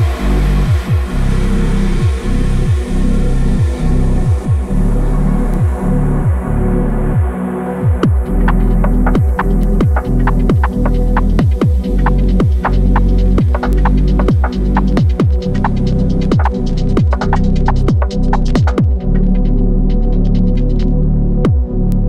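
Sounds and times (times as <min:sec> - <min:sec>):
deep bass kick drums: 0:00.0 - 0:06.6, 0:07.2 - 0:22.0
electronic chill music: 0:00.0 - 0:22.0
hi-hat ticks: 0:08.3 - 0:19.4.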